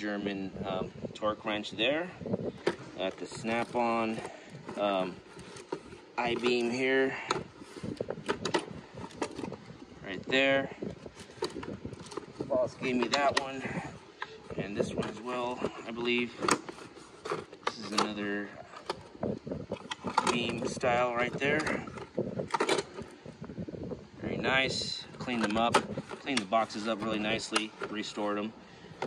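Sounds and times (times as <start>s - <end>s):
wind noise on microphone: 0.0s - 29.0s
plastic cases and tools clicking: 1.6s - 23.5s, 24.4s - 29.0s
tools clattering in drawer: 19.7s - 23.1s.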